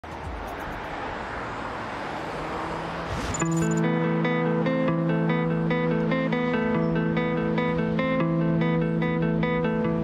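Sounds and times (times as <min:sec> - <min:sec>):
steady rushing noise: 0:00.0 - 0:04.0.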